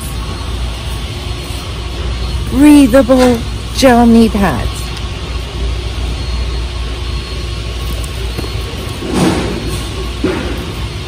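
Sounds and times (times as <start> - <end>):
store interior hum: 0.0 - 11.0.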